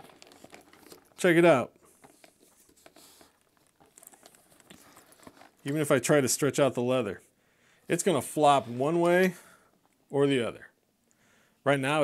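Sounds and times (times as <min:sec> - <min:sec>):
bag clicks and rustles: 0:00.0 - 0:06.2.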